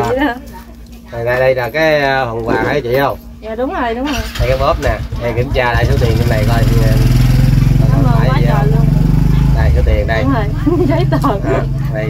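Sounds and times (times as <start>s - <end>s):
motorbike engine drone: 4.2s - 12.0s
person talking: 9.7s - 12.0s.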